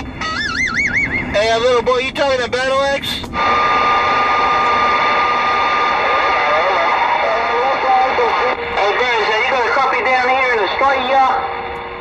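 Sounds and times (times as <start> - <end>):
radio static hiss: 2.6 - 12.0
radio crackle: 3.2 - 12.0
steady radio whistle: 3.4 - 12.0.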